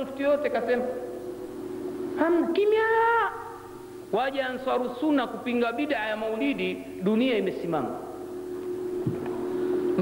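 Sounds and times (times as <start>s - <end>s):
steady flat hum: 0.0s - 10.0s.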